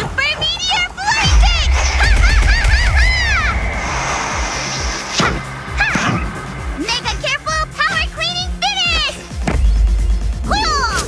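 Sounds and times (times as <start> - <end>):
cartoon action music: 0.0 - 11.0
swooping pitch sweep: 1.2 - 8.6
bright shimmering hiss: 1.3 - 8.1.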